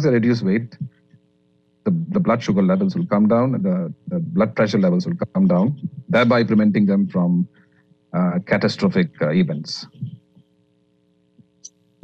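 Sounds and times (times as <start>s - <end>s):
person speaking: 0.0s - 0.9s, 1.9s - 7.6s, 8.2s - 10.4s
faint electrical hum: 0.0s - 12.0s.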